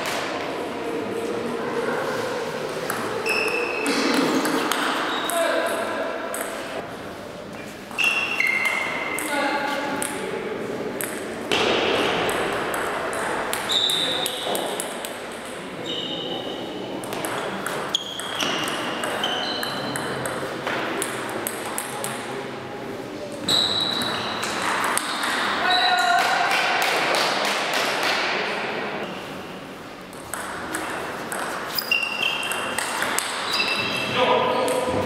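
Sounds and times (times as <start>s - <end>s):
voices in a hall: 0.0s - 35.0s.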